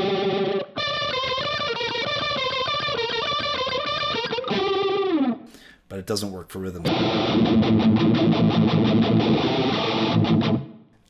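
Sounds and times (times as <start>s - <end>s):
distorted electric guitar with phaser: 0.0s - 5.6s, 6.9s - 10.9s.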